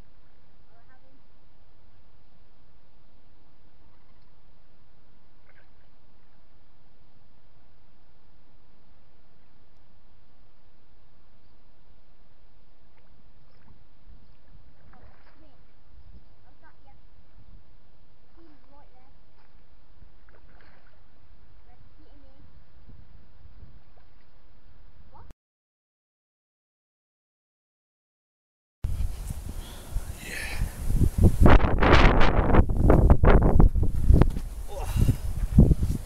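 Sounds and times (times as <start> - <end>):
wind buffeting microphone: 28.9 - 36.0.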